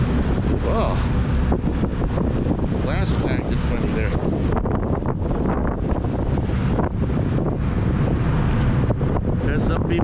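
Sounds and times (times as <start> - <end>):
churning boat wake: 0.0 - 10.0
wind buffeting microphone: 0.0 - 10.0.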